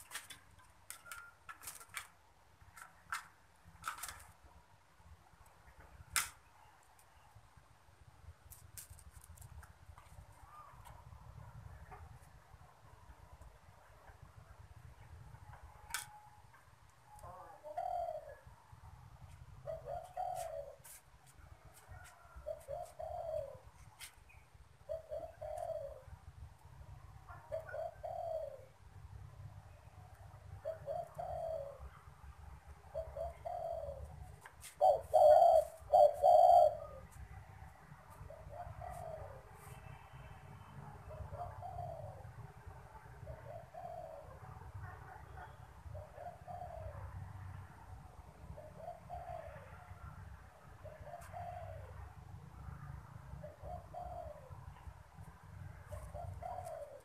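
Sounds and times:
dove cooing: 17.2s - 18.6s, 19.6s - 21.0s, 22.2s - 24.0s, 24.8s - 26.2s, 27.3s - 28.8s, 30.6s - 32.0s, 32.8s - 37.2s, 38.2s - 39.6s, 41.0s - 42.4s, 43.1s - 47.2s, 48.5s - 49.9s, 50.8s - 52.1s, 53.4s - 54.8s, 55.8s - 57.0s.

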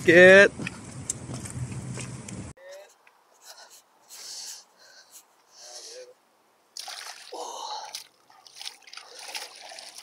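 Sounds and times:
water splashing from wading: 6.8s - 10.0s.

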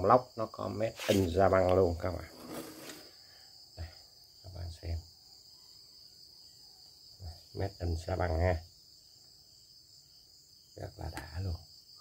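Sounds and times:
man talking: 0.0s - 2.4s, 4.5s - 5.0s, 7.2s - 8.6s, 10.8s - 11.6s
crickets chirring: 0.0s - 12.0s.

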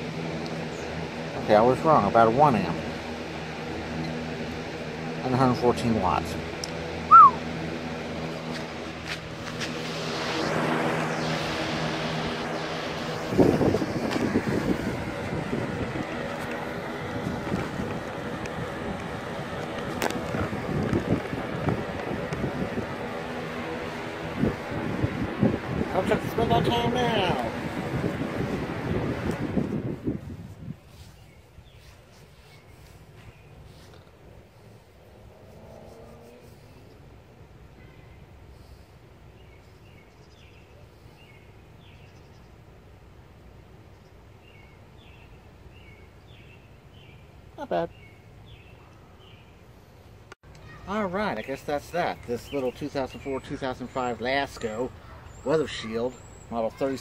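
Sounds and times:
box fan motor hum: 0.0s - 40.6s
air rushing from fan blades: 0.0s - 42.0s
high chirp: 7.1s - 7.4s
wind buffeting microphone: 9.2s - 31.9s.

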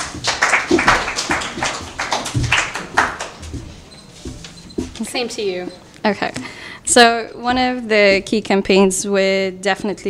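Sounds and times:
people clapping unevenly: 0.0s - 3.8s.

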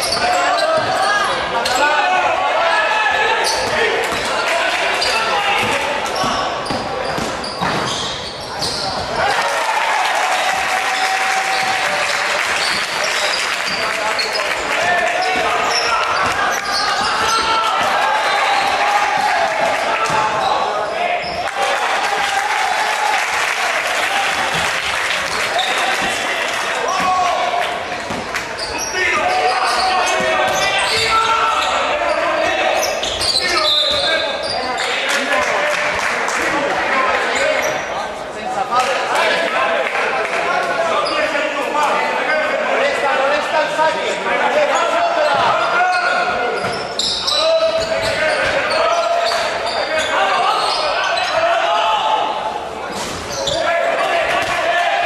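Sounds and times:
indistinct echoing voices: 0.0s - 55.0s.

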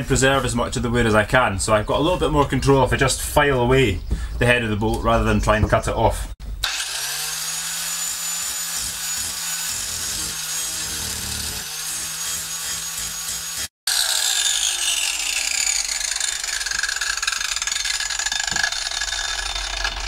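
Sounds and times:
angle grinder whining: 6.6s - 20.0s.

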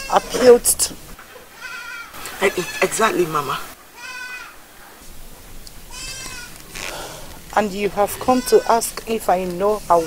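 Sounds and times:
farm animal bleating: 0.0s - 0.8s, 1.6s - 4.6s, 5.9s - 7.1s, 7.8s - 9.0s, 9.7s - 10.0s.

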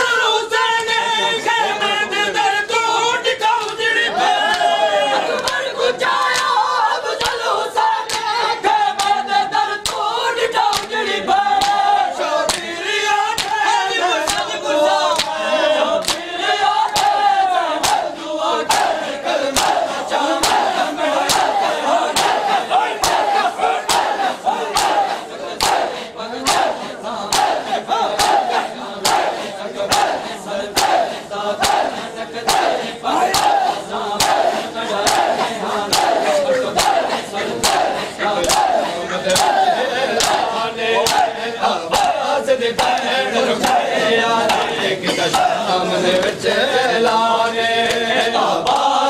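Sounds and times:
crowd chanting: 0.0s - 49.0s
chest beating slaps: 22.2s - 25.9s, 26.5s - 39.6s.

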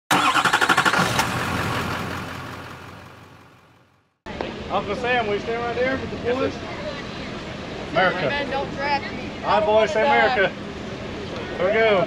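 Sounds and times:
engine starting and running: 0.1s - 4.1s.

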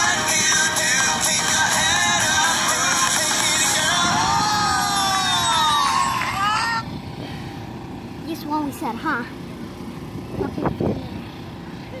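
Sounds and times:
low outdoor background rumble: 0.0s - 12.0s
child crying out: 4.3s - 6.9s.

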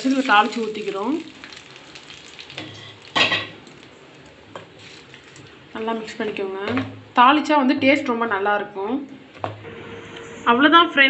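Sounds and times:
hot oil sizzling: 0.0s - 5.5s.

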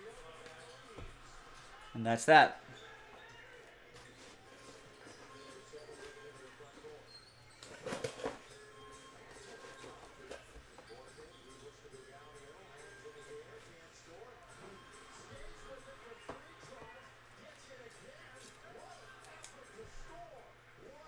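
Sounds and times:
faint background music: 0.0s - 21.0s.

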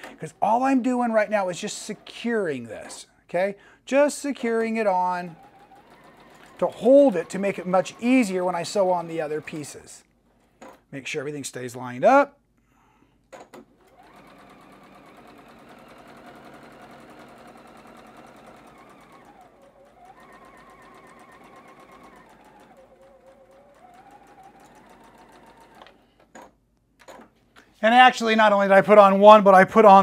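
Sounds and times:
sewing machine running: 0.0s - 3.5s, 4.1s - 10.0s, 13.8s - 26.2s.

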